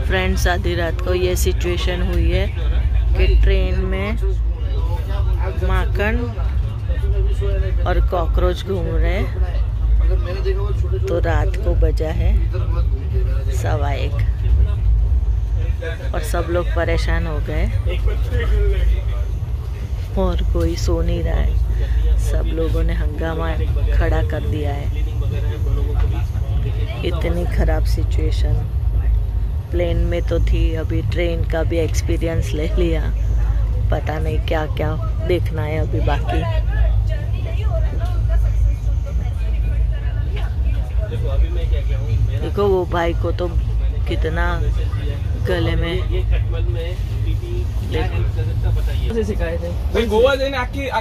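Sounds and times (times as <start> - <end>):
passengers' voices: 0.0 - 51.0
train coach rumble: 0.0 - 51.0.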